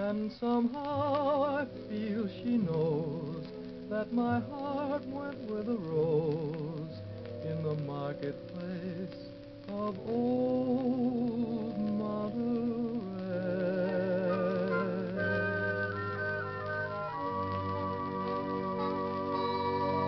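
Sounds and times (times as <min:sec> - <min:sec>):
big band orchestra playing a ballad: 0:11.5 - 0:20.0.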